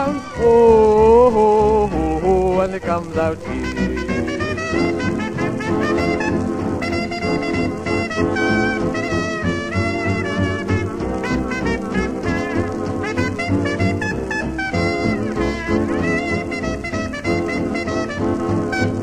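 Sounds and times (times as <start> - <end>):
dance band with brass: 3.4 - 19.0.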